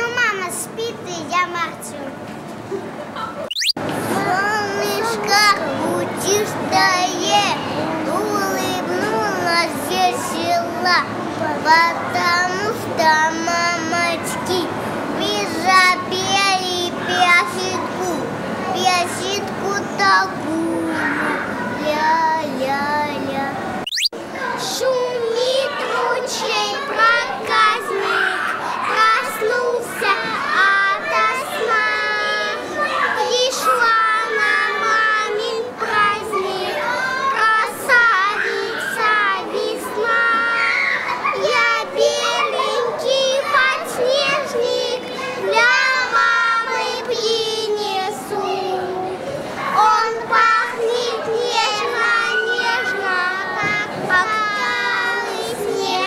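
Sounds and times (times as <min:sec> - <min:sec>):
young children singing: 0:04.0 - 0:23.7, 0:24.4 - 0:56.0.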